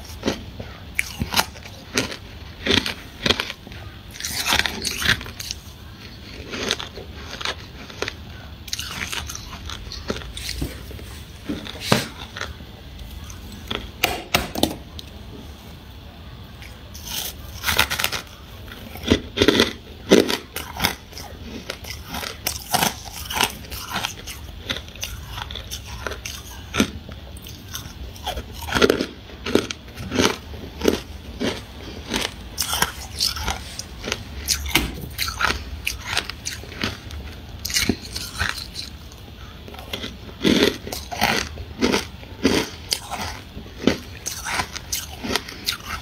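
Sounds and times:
chewing crunchy frost: 0.0 - 14.0, 16.5 - 46.0.

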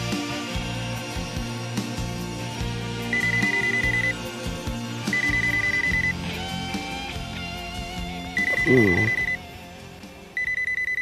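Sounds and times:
background music with guitar: 0.0 - 11.0
mobile phone ringing: 3.1 - 4.3, 5.1 - 6.3, 8.4 - 9.4, 10.4 - 11.0.

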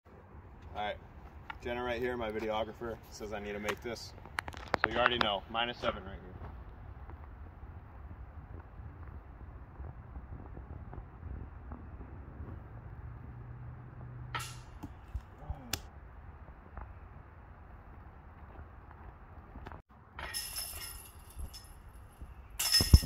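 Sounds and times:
disc striking metal basket: 14.3 - 15.3, 20.2 - 23.0.

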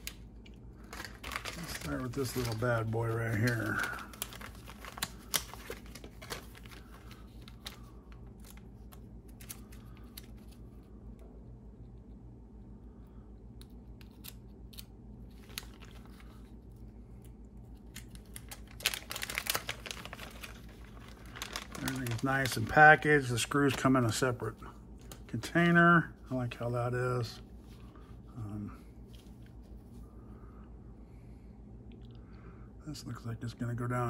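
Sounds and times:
plastic bag crinkling: 0.0 - 10.6, 15.3 - 16.6, 17.8 - 25.4
steady low hum: 0.0 - 34.0.

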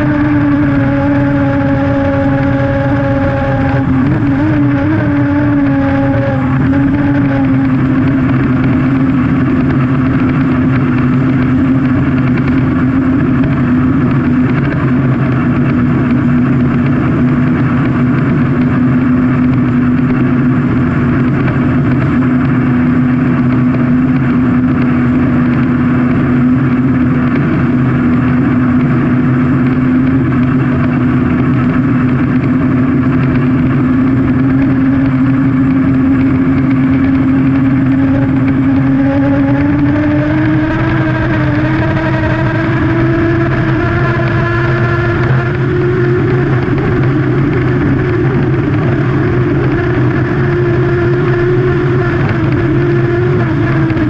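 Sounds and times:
rushing wind: 0.0 - 54.0
turbine engine running: 0.0 - 54.0.

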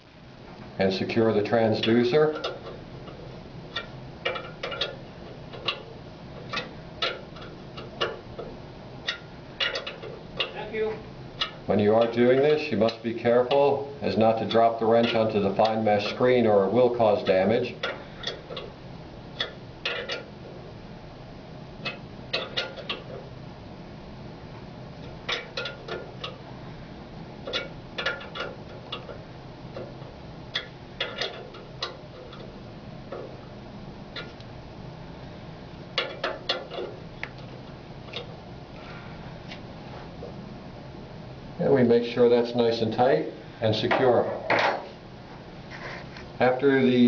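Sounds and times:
wrench clicking: 2.3 - 5.9, 19.4 - 20.3.

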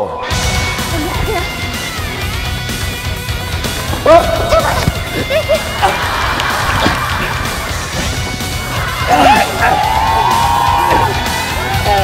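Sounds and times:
background music: 0.0 - 12.0
people falling onto wooden floor: 6.4 - 7.4.

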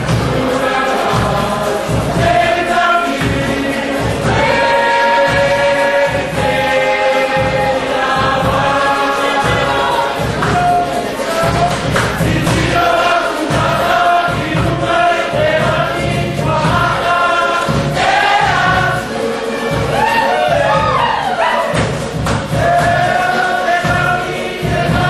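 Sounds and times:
steady low beat: 0.0 - 21.2
group singing in chorus: 0.0 - 25.0.

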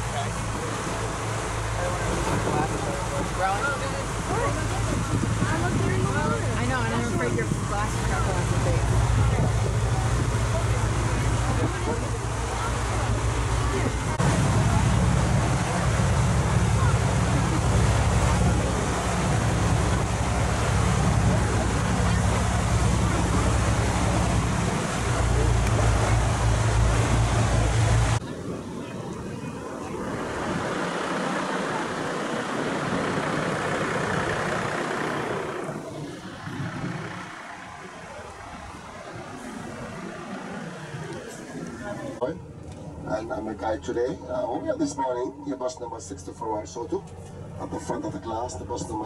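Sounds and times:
boat engine running: 0.0 - 49.0
passing traffic: 0.0 - 49.0
wind and water rushing: 0.0 - 49.0.

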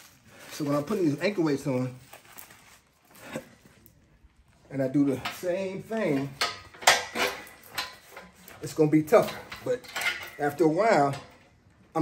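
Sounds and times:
faint handling noise: 0.0 - 12.0.

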